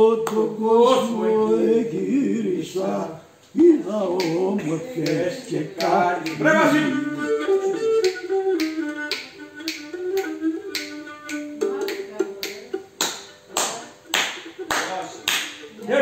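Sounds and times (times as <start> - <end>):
bowed lyra folk melody: 4.3 - 16.0.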